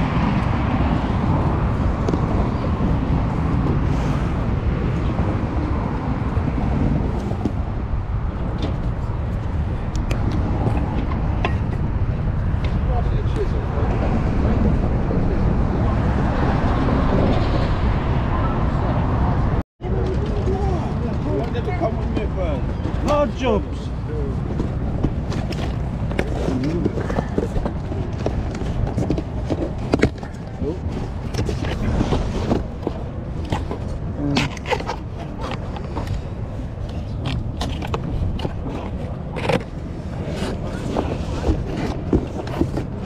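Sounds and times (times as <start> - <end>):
wind buffeting microphone: 0.0 - 43.0
voices talking: 19.8 - 25.1.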